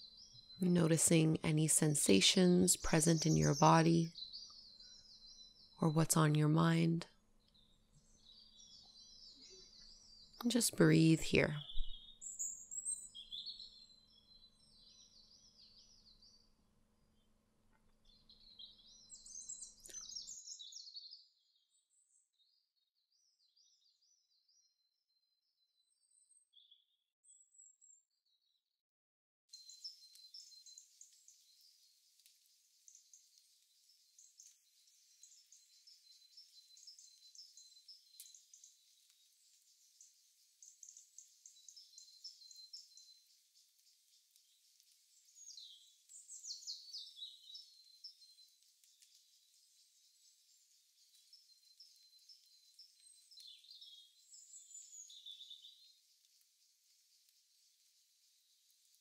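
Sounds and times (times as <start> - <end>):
small birds chirping and trilling: 0.0 - 28.6, 29.5 - 59.0.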